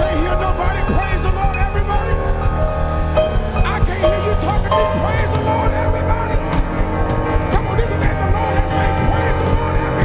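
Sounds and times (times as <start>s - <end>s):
bass line: 0.0s - 10.0s
keyboard chords: 0.0s - 10.0s
live worship band music: 0.0s - 10.0s
person singing: 3.2s - 10.0s.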